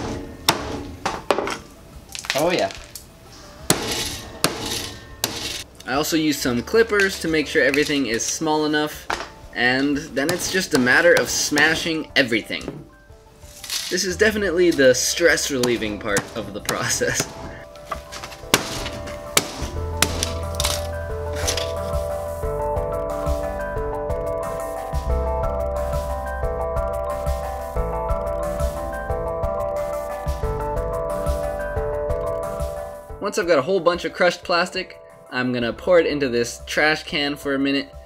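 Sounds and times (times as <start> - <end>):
background music: 0.0 - 38.0
broken plastic bits rattling: 2.1 - 3.1, 13.6 - 14.0, 20.1 - 21.8
hammer smashing plastic: 15.6 - 21.8.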